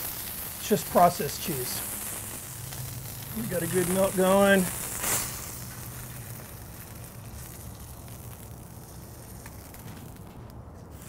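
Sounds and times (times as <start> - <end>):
fat sizzling on griddle: 0.0 - 11.0.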